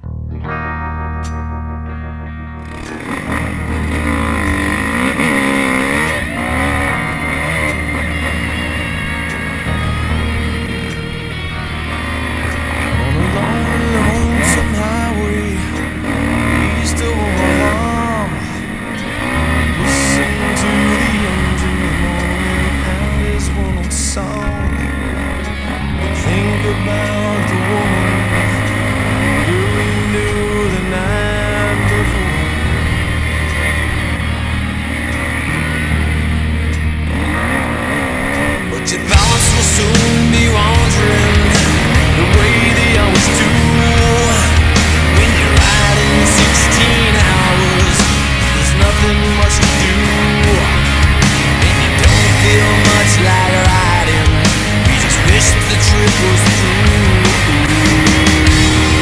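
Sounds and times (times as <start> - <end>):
dirt bike engine revving: 2.6 - 59.0.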